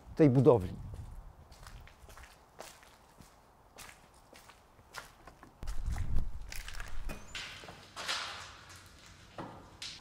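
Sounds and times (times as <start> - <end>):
footsteps on paving stones: 0.2 - 10.0.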